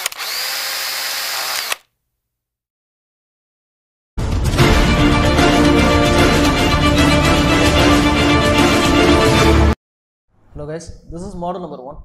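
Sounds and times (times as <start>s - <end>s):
sharp clicks: 1.4s - 1.9s.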